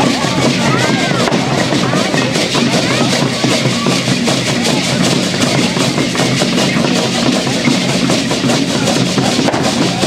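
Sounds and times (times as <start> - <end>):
hand drums beaten rhythmically: 0.0 - 10.0.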